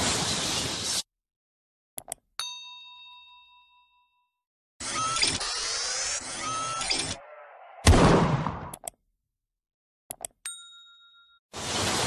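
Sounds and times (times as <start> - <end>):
notification bell ding: 2.4 - 4.3, 10.5 - 11.4.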